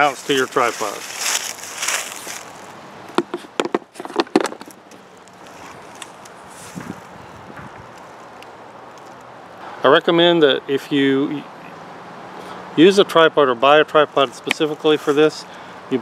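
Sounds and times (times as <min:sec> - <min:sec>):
wooden box rustling: 0:00.7 - 0:07.0
sharp knocks and clicks: 0:03.1 - 0:05.0, 0:06.0 - 0:09.2.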